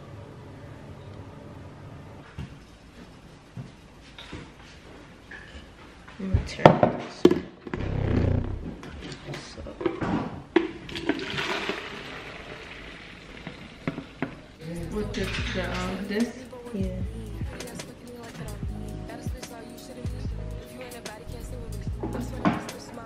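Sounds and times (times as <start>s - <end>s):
water pouring hiss: 11.0s - 14.5s.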